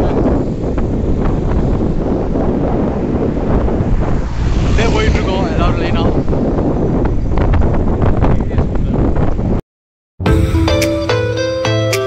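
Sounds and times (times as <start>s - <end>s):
wind buffeting microphone: 0.0s - 9.6s.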